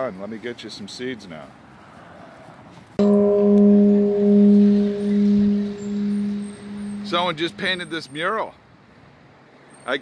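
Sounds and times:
temple bell ringing: 3.0 - 7.9.

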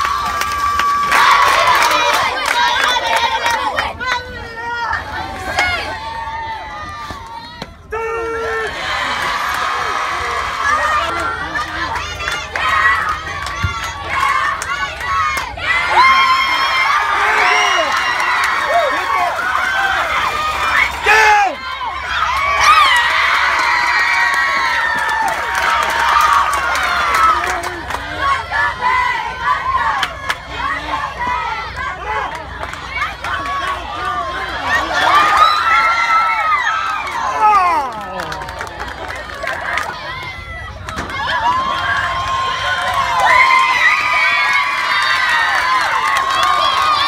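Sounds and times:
crowd of girls cheering: 0.0 - 47.0.

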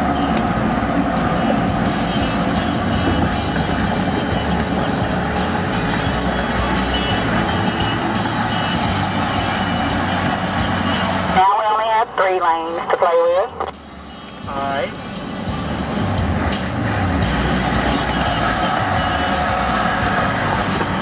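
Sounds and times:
car cabin road noise: 0.0 - 21.0
person's voice: 11.4 - 13.6.

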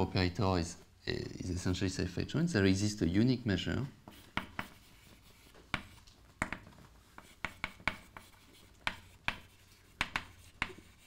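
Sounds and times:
chalk tapping and scratching on blackboard: 4.0 - 11.0.

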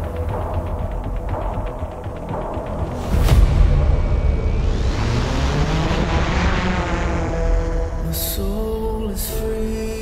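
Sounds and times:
music: 0.0 - 10.0
drone propellers whirring: 0.1 - 8.2.

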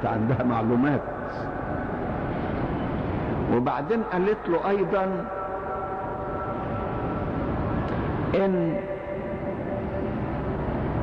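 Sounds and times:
faint steady tones: 0.0 - 11.0
old recording rumble and hiss: 0.0 - 11.0.

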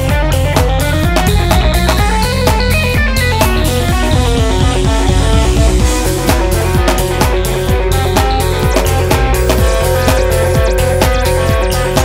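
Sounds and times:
instrumental rock guitar: 0.0 - 12.0
steady bass line: 0.0 - 12.0.

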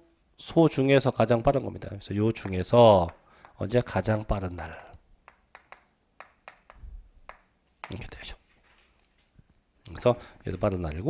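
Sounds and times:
chalk tapping on chalkboard: 2.2 - 8.3.

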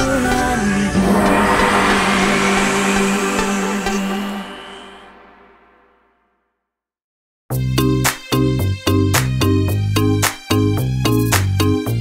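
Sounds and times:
rising whooshing noise sweep: 0.8 - 6.1
held synth note: 0.9 - 6.1.

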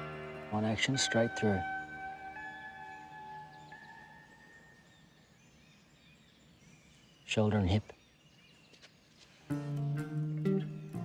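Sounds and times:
held musical tone: 9.5 - 11.0.

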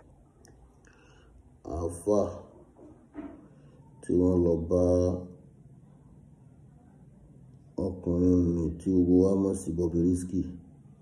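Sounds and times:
man chanting: 7.8 - 10.6.

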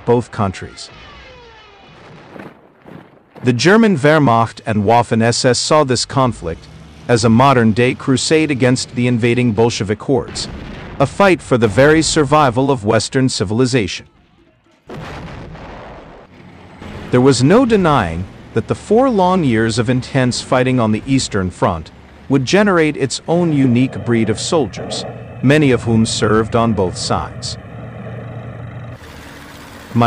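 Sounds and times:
heavy vehicle engine rumble: 3.4 - 10.3, 16.3 - 30.0
artillery gun blast: 10.3 - 12.3, 14.1 - 18.5.

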